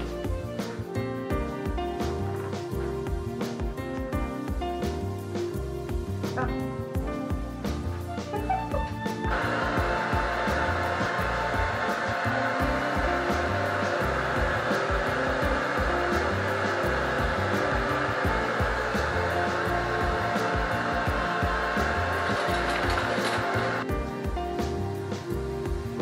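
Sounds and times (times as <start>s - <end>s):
hair dryer running: 0.0s - 6.4s, 7.4s - 26.0s.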